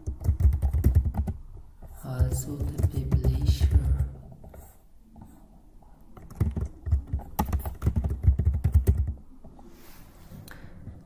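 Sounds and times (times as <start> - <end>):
computer keyboard typing: 0.0 - 4.7, 6.1 - 9.2.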